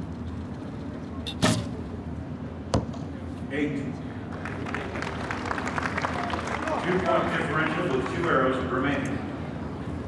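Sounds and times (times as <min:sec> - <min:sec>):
steady low background noise: 0:00.0 - 0:10.0.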